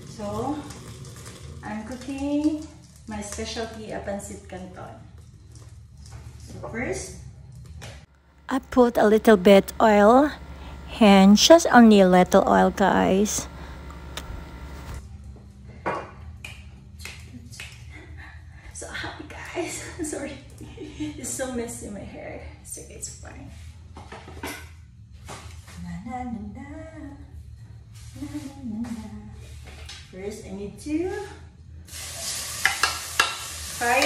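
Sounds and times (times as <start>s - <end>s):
steady low hum: 7.1s - 24.0s
shrimp sizzling in hot oil: 31.9s - 34.0s.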